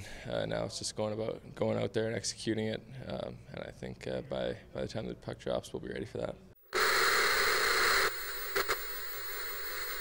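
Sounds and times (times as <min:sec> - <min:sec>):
static crackles: 0:06.6 - 0:10.0
television static hiss: 0:06.6 - 0:10.0.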